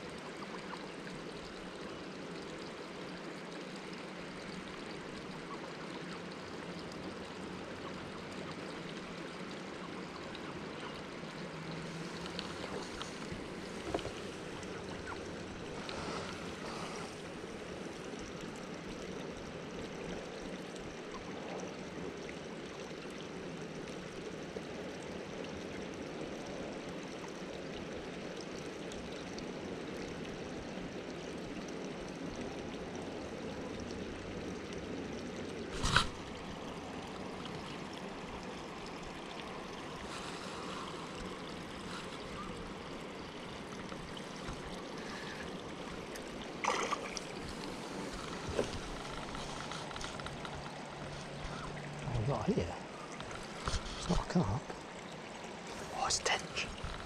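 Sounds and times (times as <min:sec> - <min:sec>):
short splash: 0:46.6 - 0:49.9.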